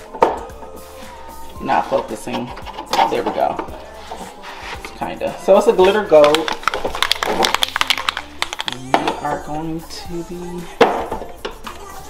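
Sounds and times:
person speaking: 1.6 - 4.0, 4.6 - 10.8
spray can rattling: 5.8 - 9.1.

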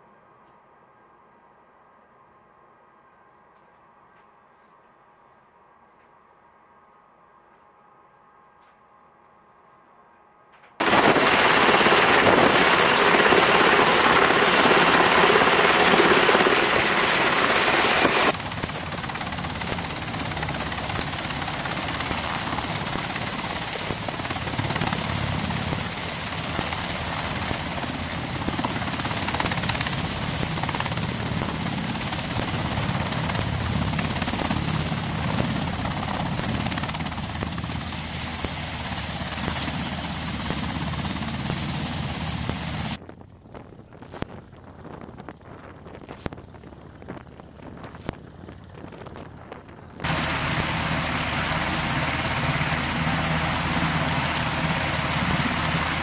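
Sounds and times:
helicopter rotor and engine: 10.8 - 56.0.

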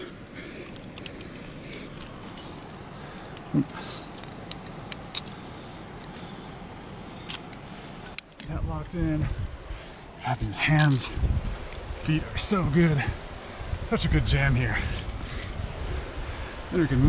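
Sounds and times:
metallic clinks of climbing gear: 0.0 - 12.5
road traffic: 0.0 - 13.8
creek: 0.0 - 17.0
wind: 0.0 - 17.0.

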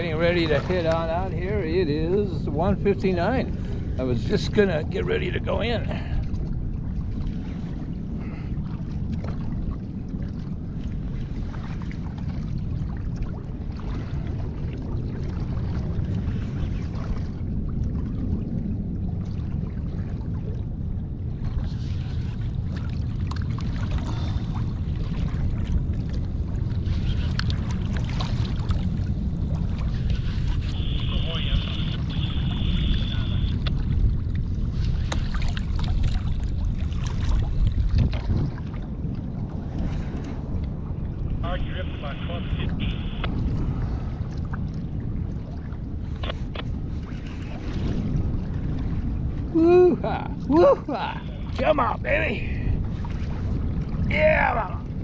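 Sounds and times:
water lapping against hull: 0.0 - 55.0
wind on microphone: 0.0 - 55.0
thin high whine: 30.6 - 33.7.

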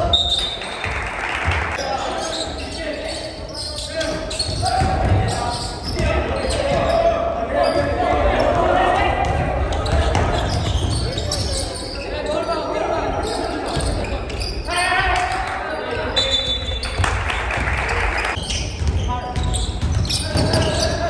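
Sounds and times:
basketball bouncing on wooden court: 4.3 - 7.0, 8.5 - 11.6, 18.4 - 21.0.

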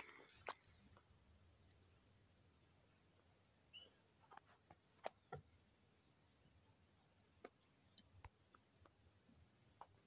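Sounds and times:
faint sharp clicks: 0.0 - 1.9, 7.4 - 9.0.

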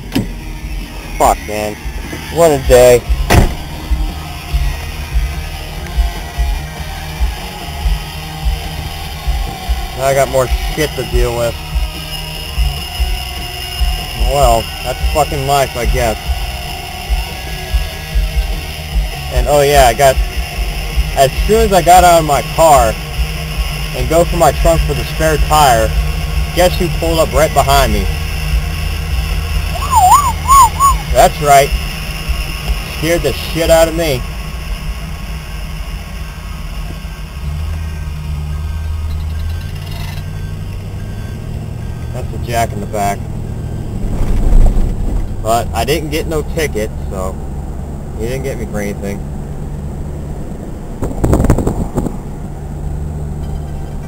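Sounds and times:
car cabin low rumble: 0.0 - 54.0
irregular low thumps: 3.0 - 5.4.

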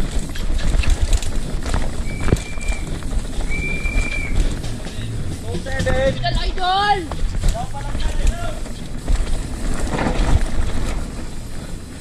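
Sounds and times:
bike tyre roar: 0.0 - 12.0.

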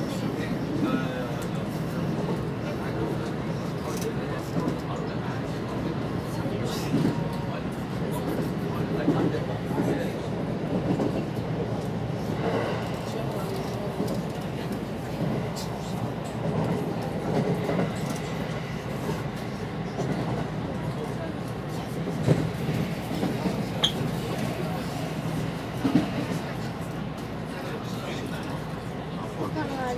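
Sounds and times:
subway train rumbling on track: 0.0 - 29.9.

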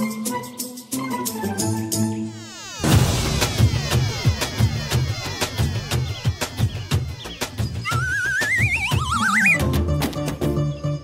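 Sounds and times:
dramatic music score: 0.0 - 11.0
high wavering rising tone: 2.2 - 9.6
drum hits: 2.8 - 8.4.

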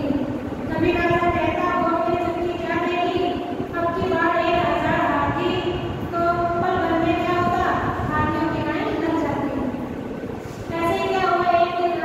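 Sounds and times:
woman speaking: 0.0 - 9.9, 10.7 - 12.0
low background noise: 0.0 - 12.0.

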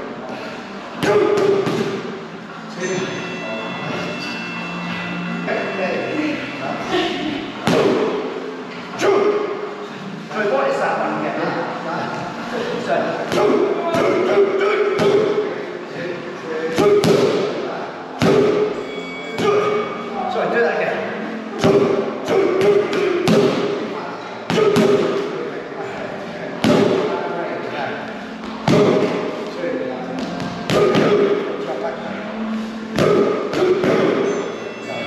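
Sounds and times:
boxing gloves striking pads: 1.0 - 2.0, 16.8 - 17.5, 18.2 - 18.7, 21.6 - 23.8, 26.6 - 27.1, 30.4 - 31.3, 32.9 - 34.2.

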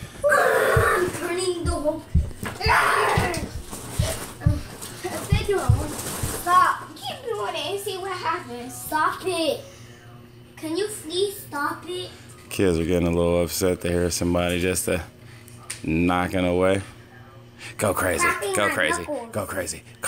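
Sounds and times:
children shouting and screaming: 0.2 - 1.3, 2.5 - 3.6.

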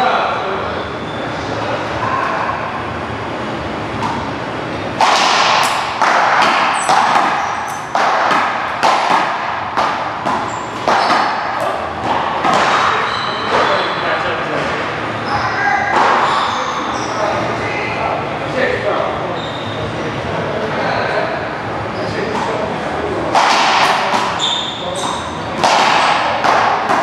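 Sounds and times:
paddleball hitting paddles and wall: 5.0 - 13.8, 23.3 - 27.0.

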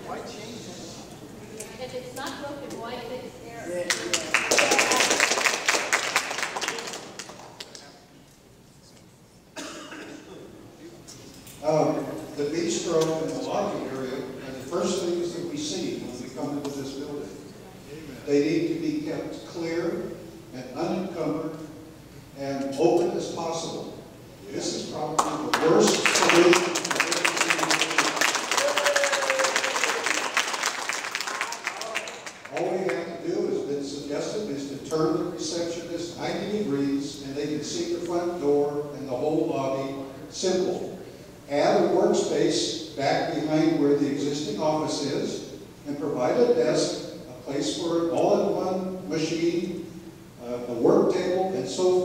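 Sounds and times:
voices: 0.0 - 5.2, 24.4 - 29.9, 31.3 - 49.8
audience applauding: 3.9 - 7.8, 25.2 - 33.1.

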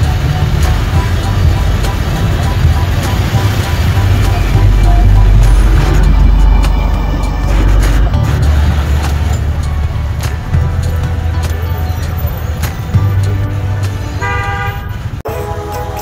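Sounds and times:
motorbike engines idling: 0.0 - 14.6
background music: 0.0 - 16.0
street clatter: 0.0 - 16.0
horn toot: 13.3 - 16.0.

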